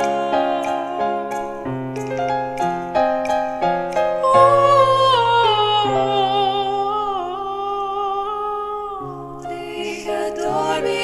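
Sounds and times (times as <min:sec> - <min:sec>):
sustained piano chords: 0:00.0 - 0:11.0
woman singing wordless note: 0:04.2 - 0:10.8.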